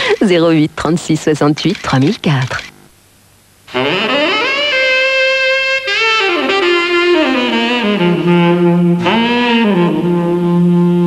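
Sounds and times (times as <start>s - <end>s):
saxophone playing jazz phrase: 3.7s - 11.0s.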